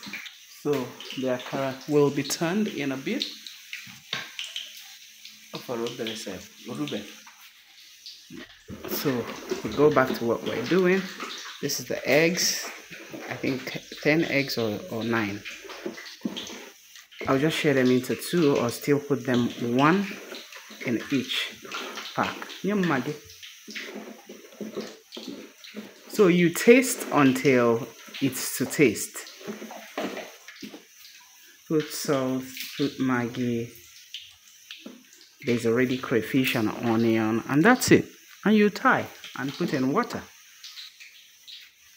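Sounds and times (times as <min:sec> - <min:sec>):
batter sizzling in oil: 0:00.0 - 0:41.9.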